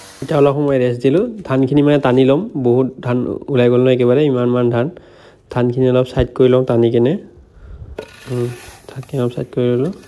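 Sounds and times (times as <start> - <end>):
rake rustling through paddy: 8.0 - 10.0.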